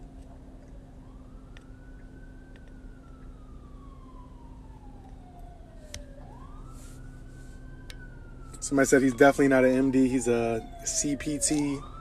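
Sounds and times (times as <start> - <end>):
siren wailing faintly: 0.0 - 12.0
steady low hum: 0.0 - 12.0.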